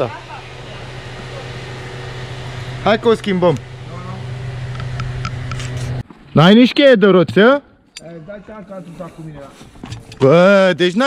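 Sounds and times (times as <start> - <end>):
low mechanical hum: 0.0 - 6.0.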